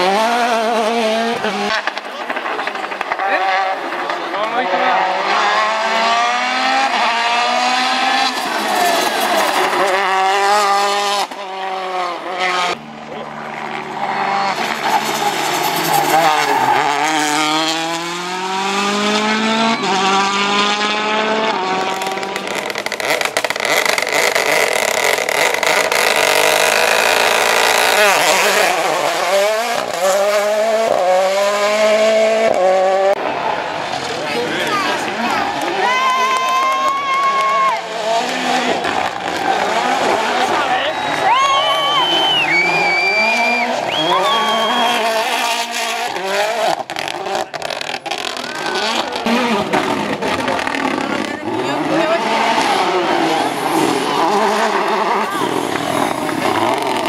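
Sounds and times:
rally car engine revving: 0.0 - 57.0.

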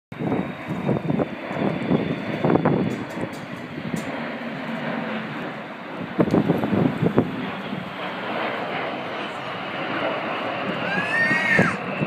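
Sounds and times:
high engine whine: 0.1 - 12.0
jet engines flying past: 0.1 - 12.0.

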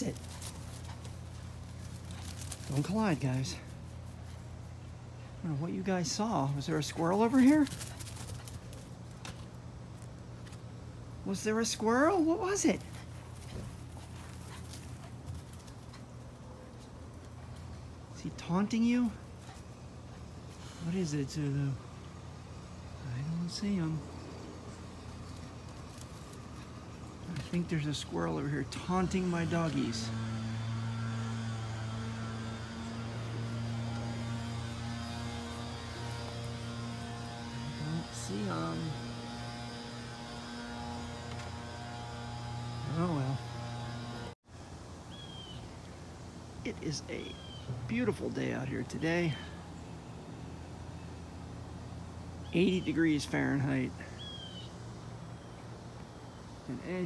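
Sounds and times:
dog paws scuffing on mulch: 0.0 - 17.9, 32.0 - 44.2
steady low hum: 0.0 - 57.0.

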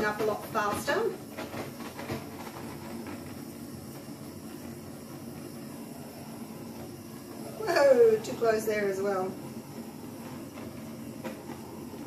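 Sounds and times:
torch flame hissing: 0.0 - 12.0.

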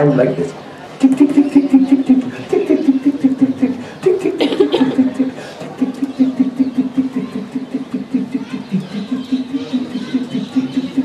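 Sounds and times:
man repeating a syllable rapidly: 0.0 - 11.0.

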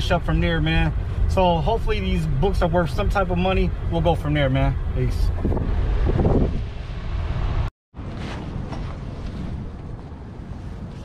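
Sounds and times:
wind buffeting microphone: 5.0 - 7.7.

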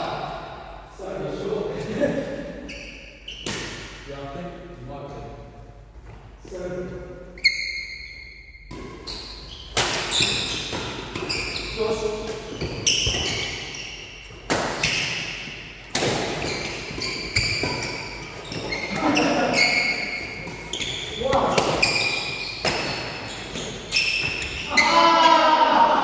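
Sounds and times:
trainers squeaking on wooden floor: 9.0 - 15.1, 16.4 - 25.0.

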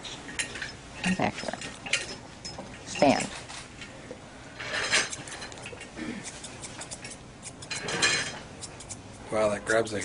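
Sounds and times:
comb rasping through fur: 6.2 - 7.8
scissors snipping: 6.2 - 7.8, 8.6 - 9.1.

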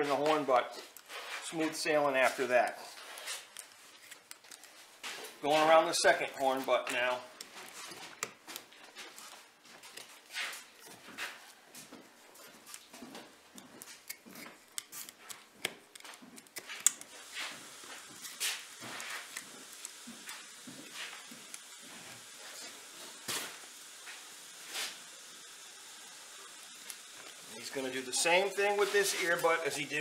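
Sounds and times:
knife scraping hide off skull: 0.8 - 6.2.

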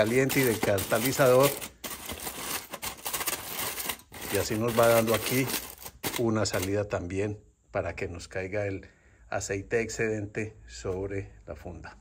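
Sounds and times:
aluminium foil crinkling: 0.0 - 6.9.

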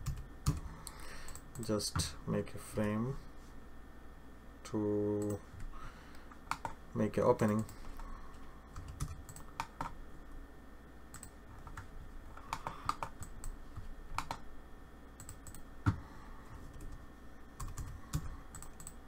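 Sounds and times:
computer keyboard typing: 0.0 - 1.7, 6.4 - 6.8, 8.7 - 10.0, 11.1 - 14.4, 15.2 - 16.0, 17.6 - 19.0.

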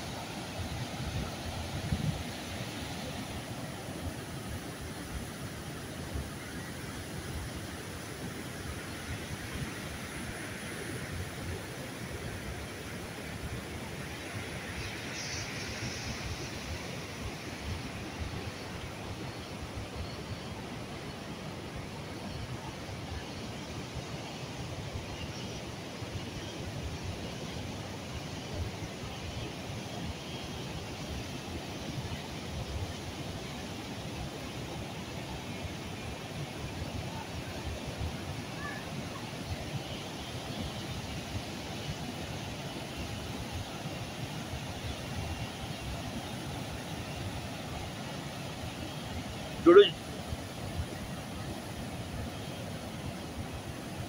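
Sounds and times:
river water rushing over boulders: 0.0 - 54.0.

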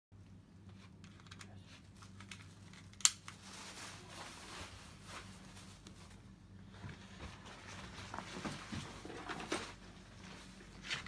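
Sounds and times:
faint low hum: 0.2 - 11.0
firearm parts clicking: 2.1 - 3.2.

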